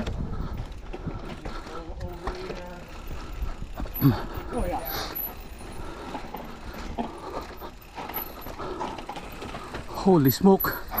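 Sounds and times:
bike rattling: 0.0s - 11.0s
bike tyres on dirt trail: 0.0s - 11.0s.

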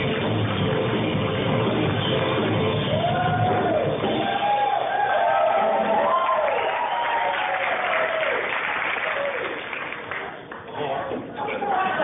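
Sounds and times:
drum kit: 0.0s - 5.0s.

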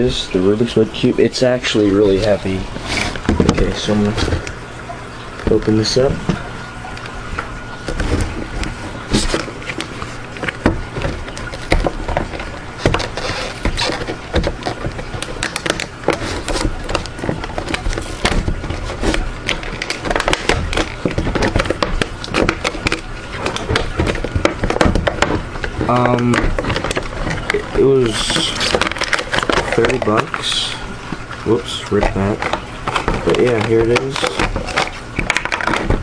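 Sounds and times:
cardboard and plastic packaging rustling: 0.0s - 36.0s
sharp clicks and knocks: 5.4s - 30.4s, 31.0s - 36.0s.

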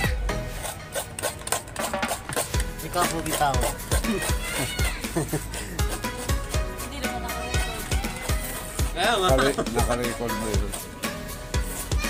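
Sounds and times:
music: 0.0s - 12.0s
coconut meat being scraped: 0.5s - 12.0s.

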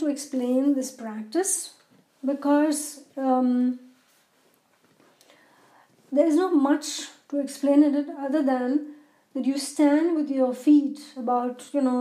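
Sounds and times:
faint soft hiss: 0.0s - 12.0s.

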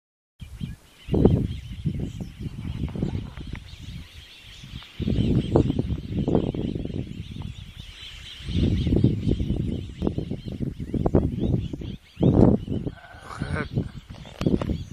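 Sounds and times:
birds chattering: 0.4s - 14.9s.

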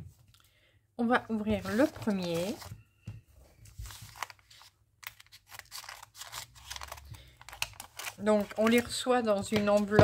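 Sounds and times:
scissors cutting plastic wrapping: 5.0s - 8.8s.

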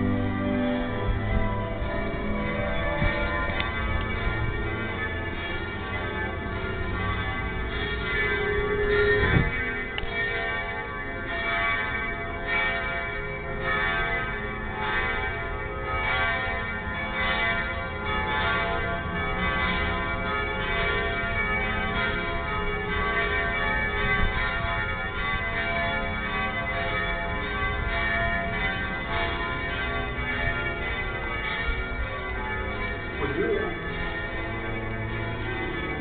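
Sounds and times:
church bells tolling: 0.0s - 36.0s.

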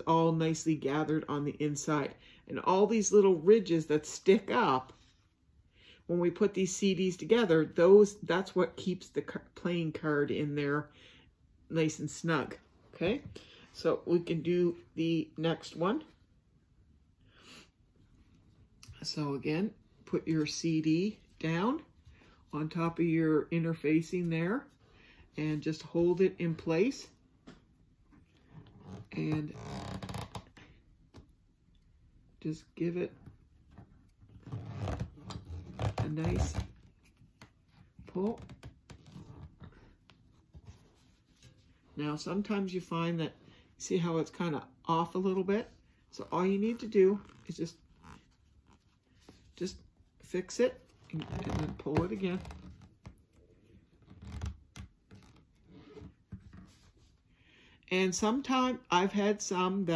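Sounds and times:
thread pulled through fabric: 34.0s - 41.8s.

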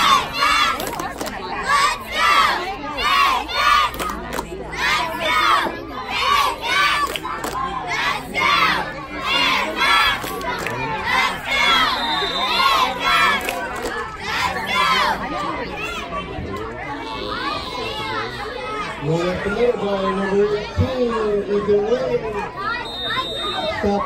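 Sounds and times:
children shouting a chant: 0.0s - 21.0s.

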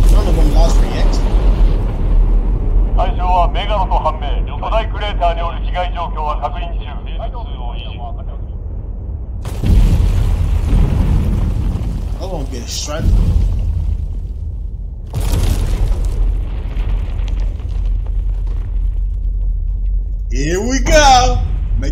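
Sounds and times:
deep rumbling boom: 0.0s - 21.9s
steady low rumble: 0.0s - 21.9s
voice speaking over radio: 3.0s - 8.4s.

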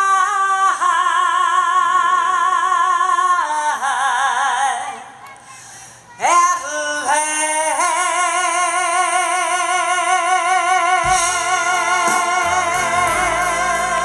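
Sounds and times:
woman singing with vibrato: 0.0s - 5.2s, 6.2s - 14.0s
live band playing: 11.0s - 14.0s.

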